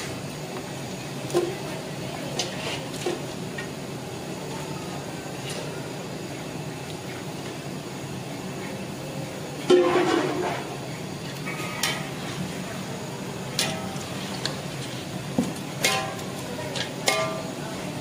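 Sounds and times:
metal ladle clanging on pot: 0:09.7 - 0:10.6, 0:13.6 - 0:14.0, 0:15.8 - 0:17.6.

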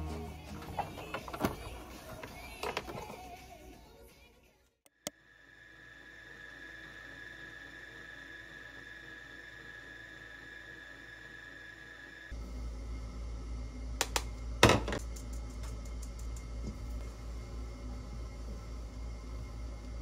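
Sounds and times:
stand mixer motor whine: 0:05.3 - 0:15.0.

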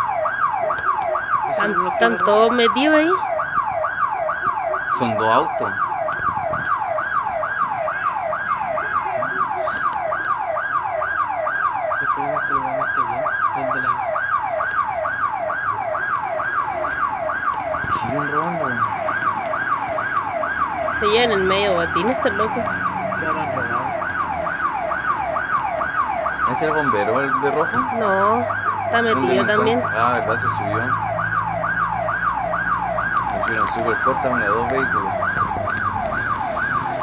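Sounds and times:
electronic alarm siren wailing: 0:00.0 - 0:37.0.

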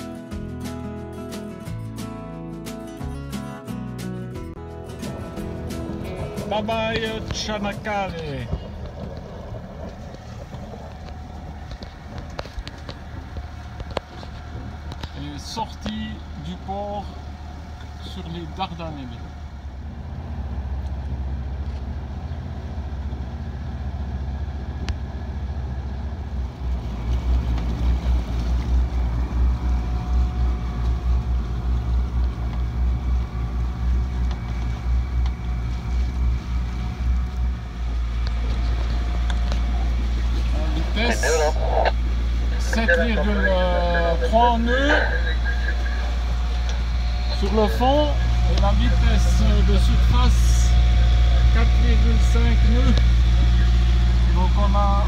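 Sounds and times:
boat engine humming: 0:00.0 - 0:55.0
voices: 0:06.4 - 0:08.8, 0:39.2 - 0:55.0.

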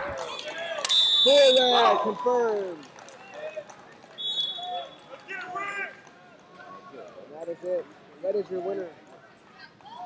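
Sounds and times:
referee's whistle blast: 0:00.8 - 0:01.9, 0:04.2 - 0:04.8.

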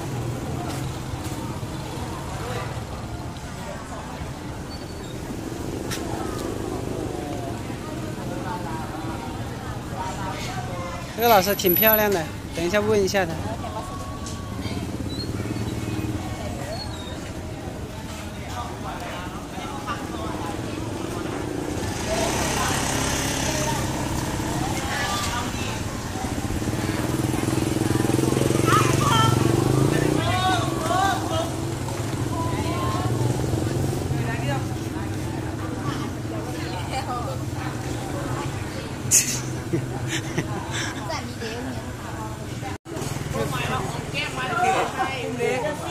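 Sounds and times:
people talking: 0:00.0 - 0:45.9
small motorcycle engines running: 0:00.0 - 0:45.9.

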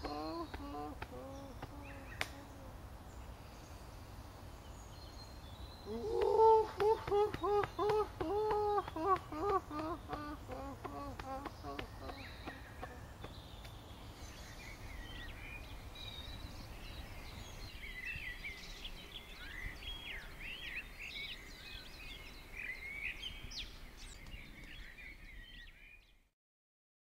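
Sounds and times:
songbirds chirping: 0:00.0 - 0:26.4.

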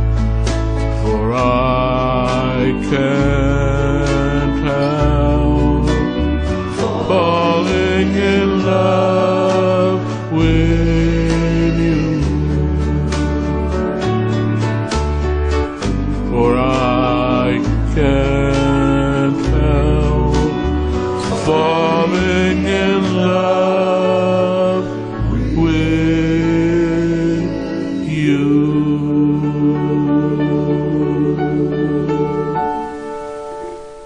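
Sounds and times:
slow ballad backing track: 0:00.0 - 0:34.0
man singing into a microphone: 0:01.0 - 0:13.7, 0:16.2 - 0:32.8.

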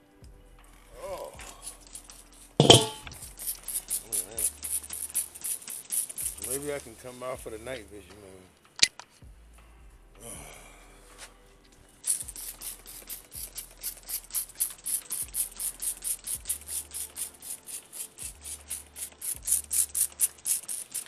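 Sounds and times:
spray bottle hissing squirts: 0:01.7 - 0:06.7, 0:12.0 - 0:21.0.

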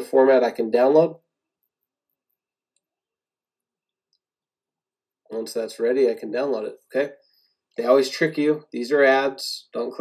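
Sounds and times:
man speaking: 0:00.0 - 0:01.2, 0:05.3 - 0:07.2, 0:07.8 - 0:10.0.

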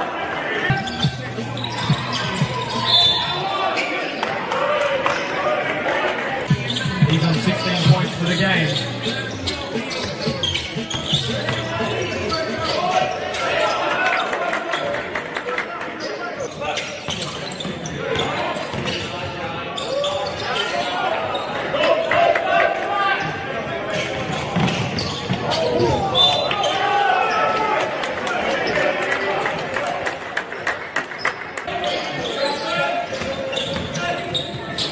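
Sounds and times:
voices calling out in echoing hall: 0:00.0 - 0:34.9.

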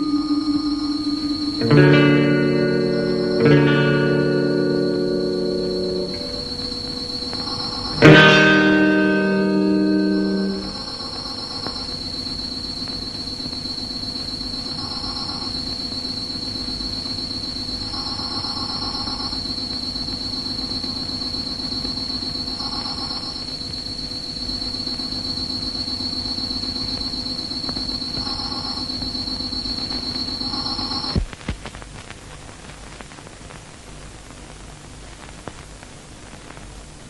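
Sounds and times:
low pulsing drone: 0:00.0 - 0:11.8
mid-pitched trill: 0:00.0 - 0:23.5
high-pitched insect-like trill: 0:00.0 - 0:31.2.

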